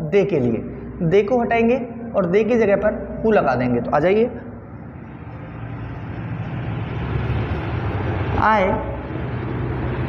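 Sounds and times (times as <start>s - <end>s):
low rumble: 4.3s - 10.0s.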